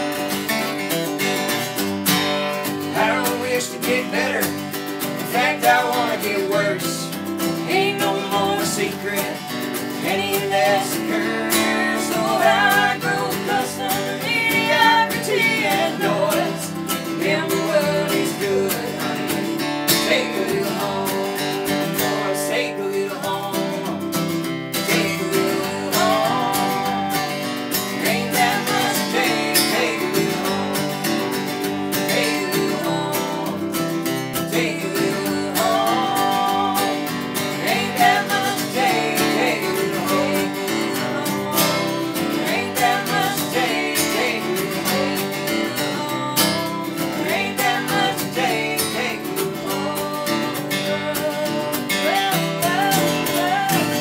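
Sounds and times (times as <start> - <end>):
mandolin: 0.0 - 54.0
strummed acoustic guitar: 0.0 - 54.0
person singing: 2.8 - 54.0.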